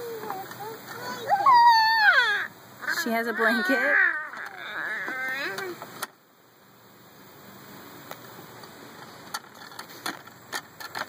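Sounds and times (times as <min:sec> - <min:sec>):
child speaking: 0:00.0 - 0:05.8
child squealing: 0:00.0 - 0:05.8.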